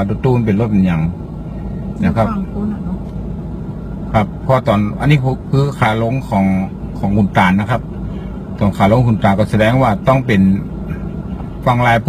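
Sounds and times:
man speaking: 0.0 - 1.2, 2.0 - 2.5, 4.1 - 7.8, 8.6 - 12.0
vehicle engine rumbling: 0.0 - 12.0.

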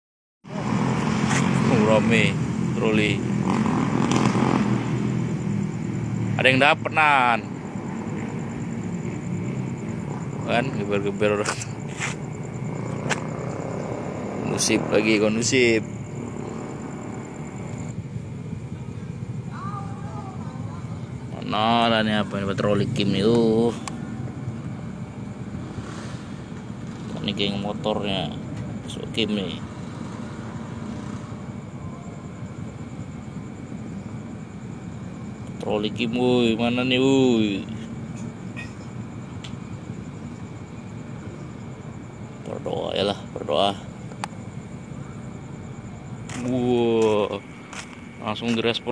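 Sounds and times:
distant motorcycle engines: 0.5 - 48.9.

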